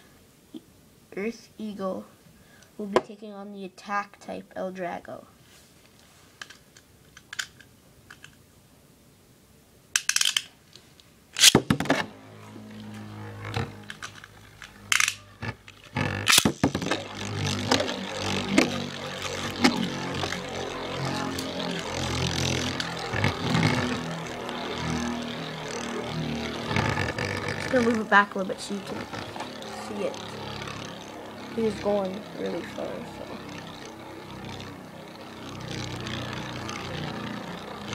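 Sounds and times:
spinning top launch noises: 0:11.4 - 0:37.9
spinning tops whirring on plastic: 0:11.4 - 0:37.9.

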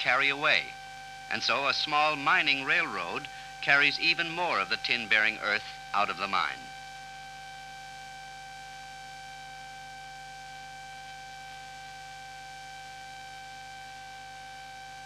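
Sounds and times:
faint hiss: 0:00.0 - 0:06.8
steady hum: 0:00.0 - 0:13.1
thin high whine: 0:00.0 - 0:15.0.

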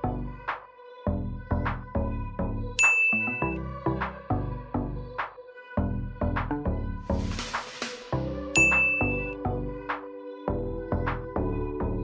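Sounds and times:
high ding sound effect: 0:02.8 - 0:03.6, 0:08.6 - 0:09.4
electronic music with steady beat: 0:07.2 - 0:12.0.

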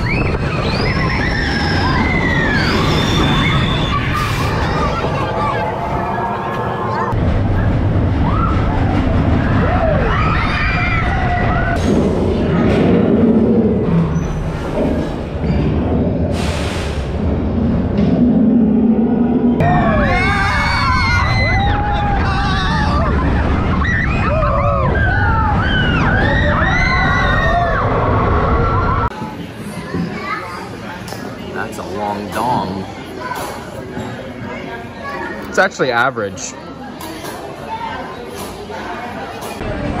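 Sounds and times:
riders screaming and whooping: 0:00.0 - 0:07.1, 0:08.0 - 0:11.8, 0:19.5 - 0:29.1
roller coaster rumbling on track: 0:00.0 - 0:30.3.

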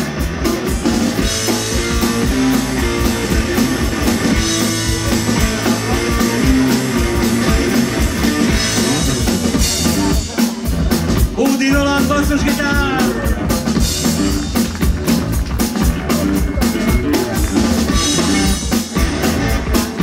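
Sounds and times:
bass guitar: 0:00.0 - 0:20.0
drum kit driving beat: 0:00.0 - 0:20.0
electric guitar: 0:00.0 - 0:20.0.

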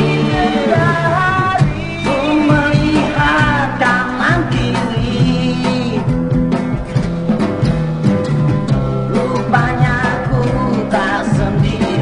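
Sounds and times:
pop song with singing: 0:00.0 - 0:07.0, 0:08.7 - 0:12.0
guitar accompaniment: 0:00.0 - 0:12.0.

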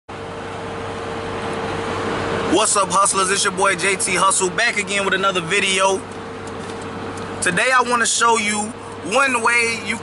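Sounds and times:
car cabin hum and rush: 0:00.1 - 0:10.0.

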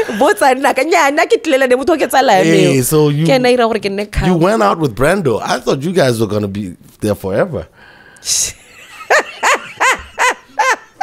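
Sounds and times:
woman laughing heartily: 0:08.5 - 0:11.0.

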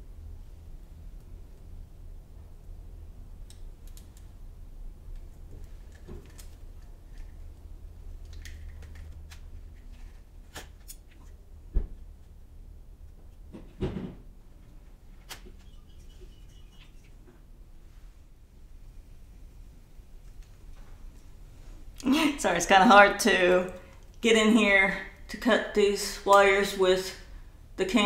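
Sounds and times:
low steady hum: 0:00.0 - 0:28.0
clicks and rustles of wires: 0:03.4 - 0:04.4, 0:05.0 - 0:11.4, 0:20.2 - 0:22.1.

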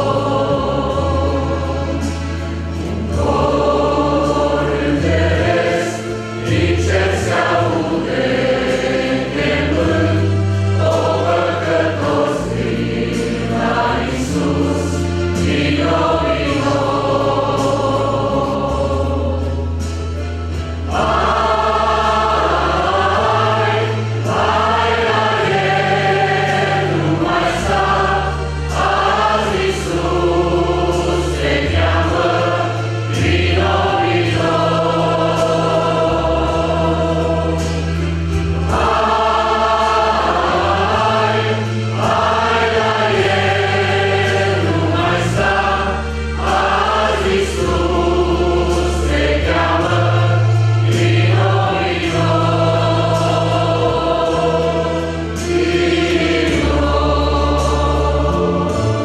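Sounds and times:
low accompanying notes: 0:00.0 - 0:59.0
mixed choir singing a hymn: 0:00.0 - 0:59.0.

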